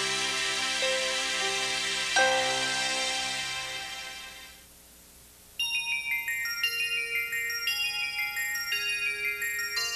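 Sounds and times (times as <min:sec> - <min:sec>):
closing music: 0:00.0 - 0:04.6
bell-like logo jingle: 0:05.6 - 0:09.9.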